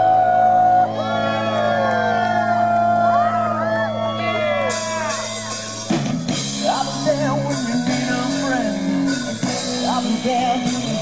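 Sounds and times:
guitar and bass chord ringing: 0.0s - 11.0s.

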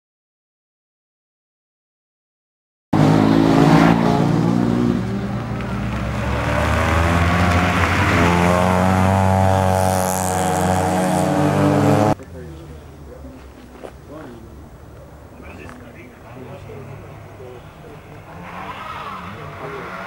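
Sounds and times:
car engine accelerating: 3.0s - 12.2s.

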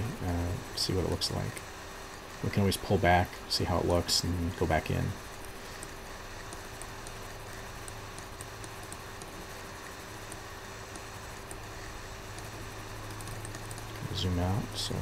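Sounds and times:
low electrical hum and hiss: 0.0s - 15.0s
faint ticks: 5.7s - 11.6s.

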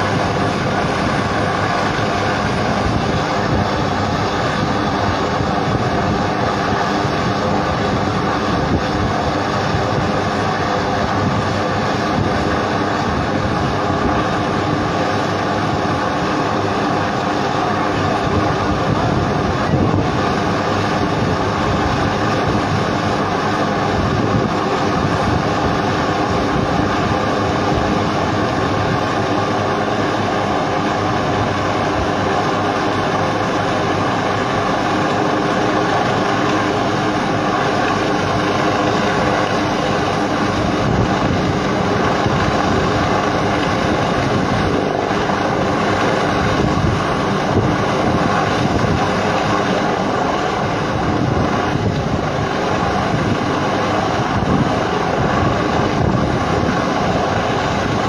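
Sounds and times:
helicopter rotor and engine drone: 0.0s - 58.0s.

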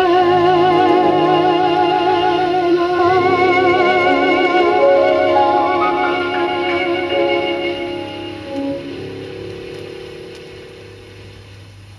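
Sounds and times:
instrumental chanson on vinyl: 0.0s - 11.9s.

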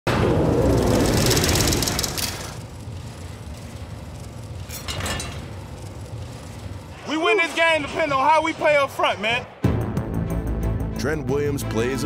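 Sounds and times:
low drone: 0.1s - 7.1s.

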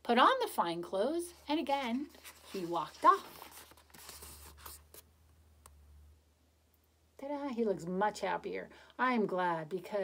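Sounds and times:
page turning paper rustle: 1.7s - 5.1s.

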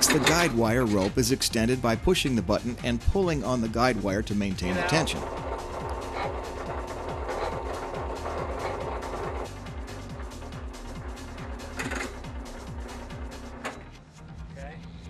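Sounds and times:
electric winch motor humming: 4.6s - 14.0s.

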